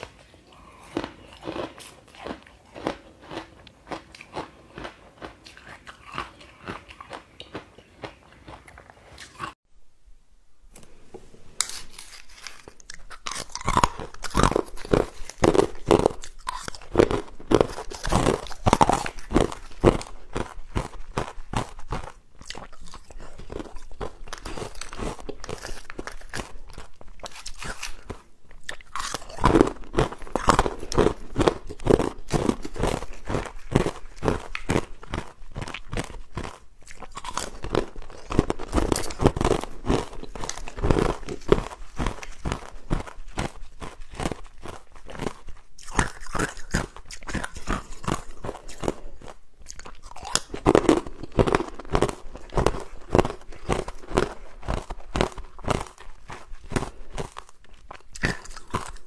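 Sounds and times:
ice cubes crunched by chewing: 11.6 - 59.0.

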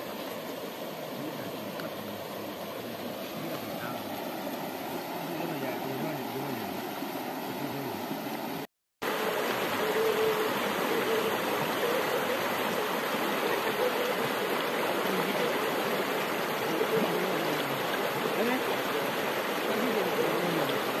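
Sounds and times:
stream flowing over stones: 0.0 - 21.0.

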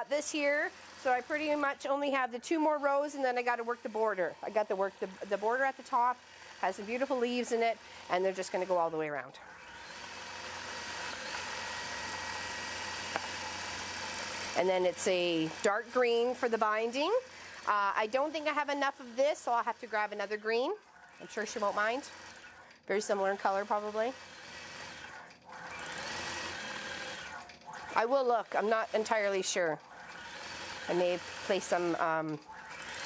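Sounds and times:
quilting machine humming: 0.0 - 33.0.

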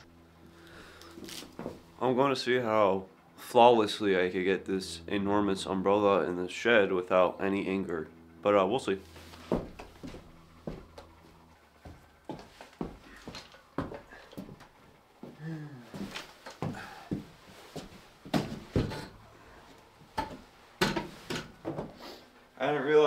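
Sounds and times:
footsteps on wooden floor: 1.2 - 1.9, 9.1 - 19.0.

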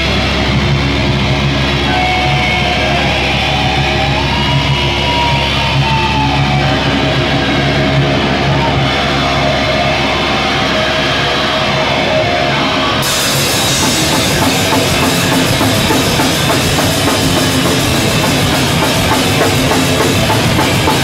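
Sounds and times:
heavy rock band playing: 0.0 - 21.0.

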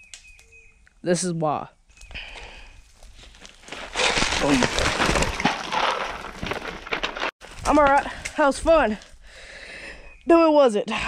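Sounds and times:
gravel scraping and crunching: 2.4 - 9.2.

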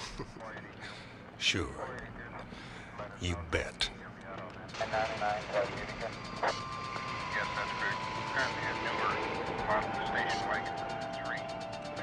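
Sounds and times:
indistinct voices: 0.4 - 6.6.

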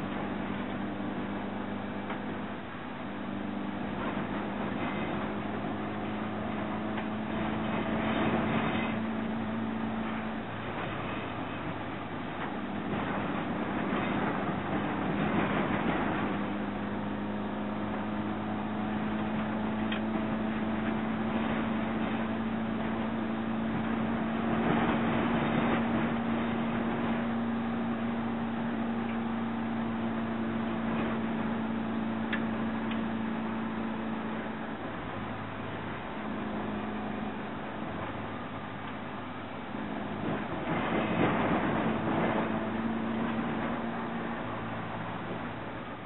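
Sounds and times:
road noise: 0.0 - 46.0
van engine running: 0.0 - 46.0.

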